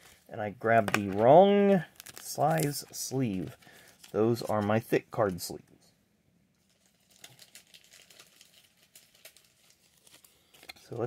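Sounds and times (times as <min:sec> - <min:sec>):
plastic card sleeve crinkling: 0:00.0 - 0:05.0, 0:06.6 - 0:11.0.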